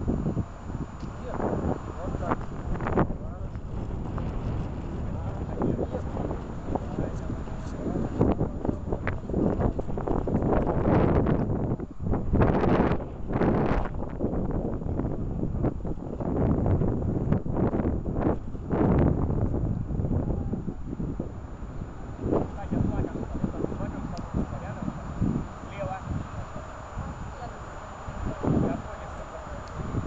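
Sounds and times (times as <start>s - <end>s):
wind buffeting microphone: 0.0s - 30.0s.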